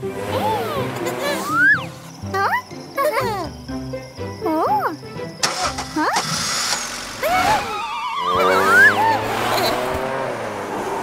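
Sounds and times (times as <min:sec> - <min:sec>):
children's background music: 0:00.0 - 0:06.4
snowmobile engine starting: 0:05.4 - 0:10.0.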